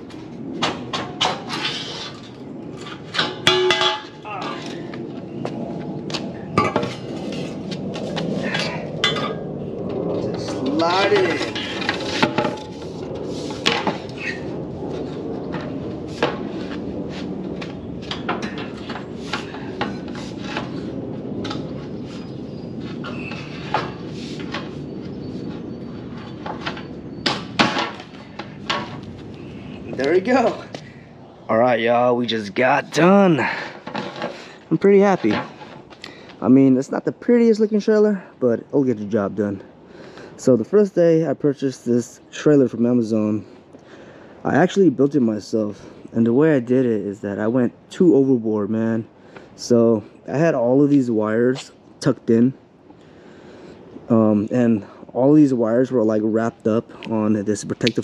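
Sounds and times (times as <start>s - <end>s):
low background noise: 0.0s - 58.0s.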